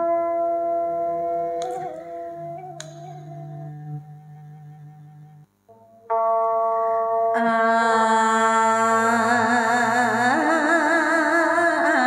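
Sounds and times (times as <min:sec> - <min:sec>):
instrumental accompaniment held notes: 0:00.0 - 0:12.0.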